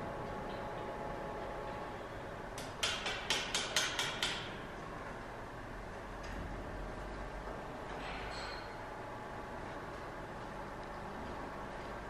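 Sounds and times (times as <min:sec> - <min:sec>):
workshop background noise: 0:00.0 - 0:05.0, 0:07.8 - 0:12.0.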